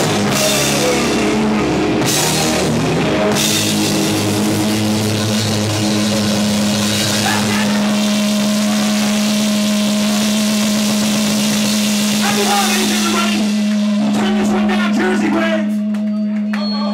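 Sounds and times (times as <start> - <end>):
cymbal wash: 0.0 - 15.9
room noise: 0.0 - 16.5
amplified rock band drone: 0.0 - 16.6
person shouting: 7.2 - 8.0.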